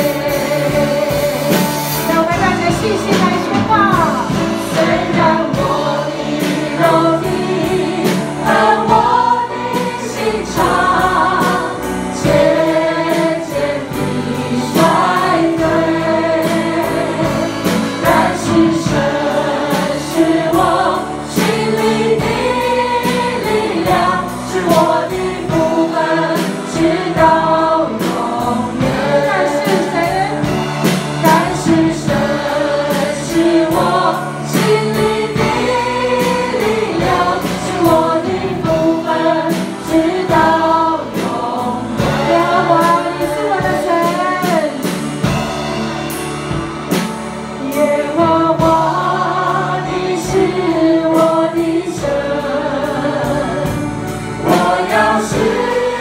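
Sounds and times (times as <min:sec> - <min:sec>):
group singing gospel song: 0:00.0 - 0:56.0
instrumental accompaniment: 0:00.0 - 0:56.0.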